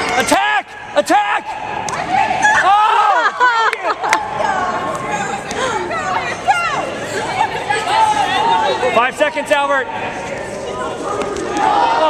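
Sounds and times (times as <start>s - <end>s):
people talking over each other: 0.0s - 12.0s.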